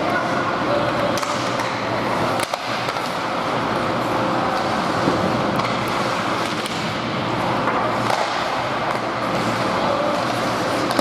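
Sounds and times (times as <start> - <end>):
hockey sticks and puck clacking: 0.0 - 11.0.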